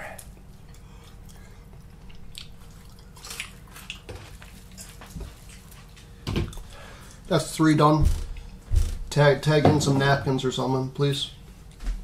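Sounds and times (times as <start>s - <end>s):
man chewing food: 0.0s - 7.3s, 8.2s - 8.9s
low room hum: 0.0s - 12.0s.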